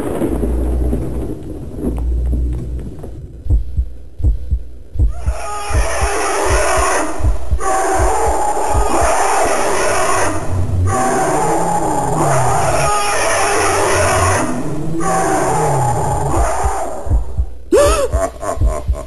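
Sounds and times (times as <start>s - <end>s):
low rumble: 0.0s - 13.0s, 13.8s - 19.0s
heartbeat thumps: 1.8s - 9.3s, 16.2s - 19.0s.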